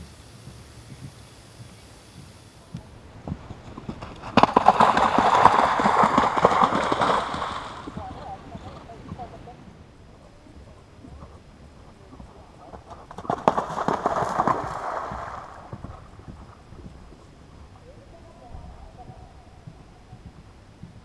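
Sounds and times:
horse hooves splashing in water: 0.0 - 21.0.

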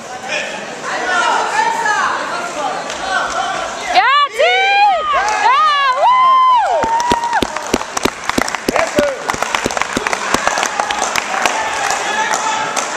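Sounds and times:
spectators cheering: 4.0 - 12.9
spectators clapping: 5.2 - 12.9.

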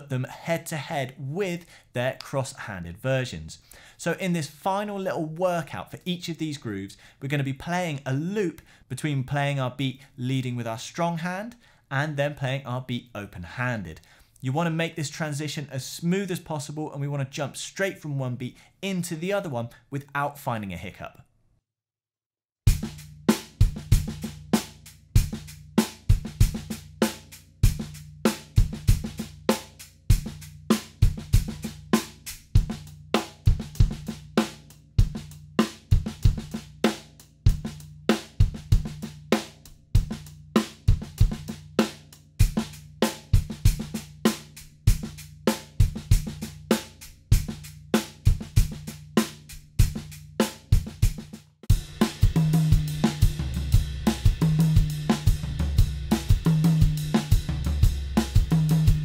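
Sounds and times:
drum kit groove: 22.7 - 59.0.

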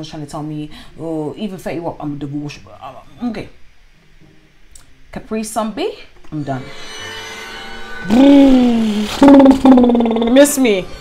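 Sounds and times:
faint background music: 0.0 - 11.0
voice holding falling note: 8.0 - 10.4.

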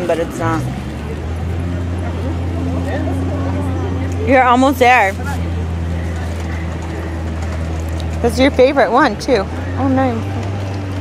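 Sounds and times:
faint distant voices: 0.0 - 11.0.

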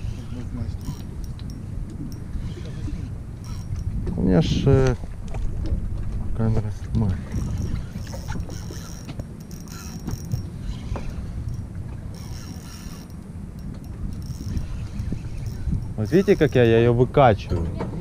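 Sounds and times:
spinning reel whirr: 0.0 - 4.0, 7.1 - 17.1
water against boat hull: 0.0 - 18.0
wind noise on microphone: 0.0 - 18.0.

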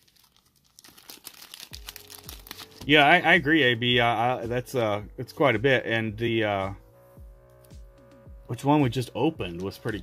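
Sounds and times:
plastic card sleeve crinkling: 0.0 - 3.1.

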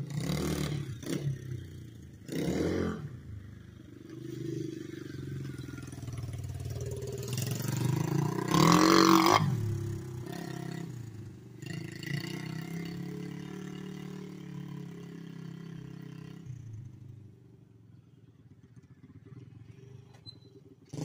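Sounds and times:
minibike engine revving: 0.0 - 17.0, 18.7 - 21.0.

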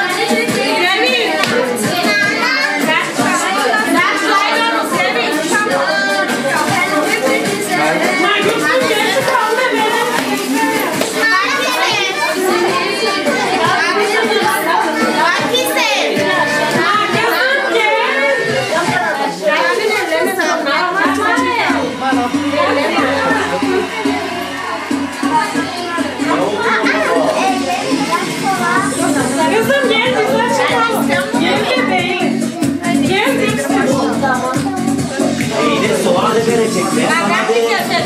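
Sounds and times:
faint music: 0.0 - 38.0
people talking over one another: 0.0 - 38.0
women and children chattering: 0.0 - 38.0.

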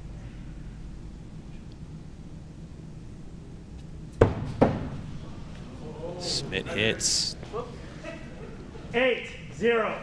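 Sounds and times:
axes striking wooden boards: 4.2 - 5.0.

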